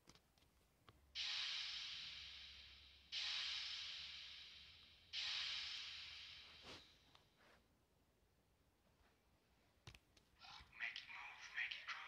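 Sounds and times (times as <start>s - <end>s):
hissing noise effect hit: 1.2s - 6.8s.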